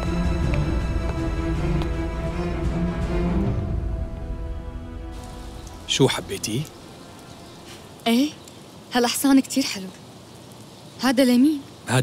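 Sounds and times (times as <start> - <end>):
background music held tones: 0.0 - 9.5
outdoor ambience hiss: 0.0 - 12.0
woman speaking: 8.0 - 10.0, 11.0 - 11.7.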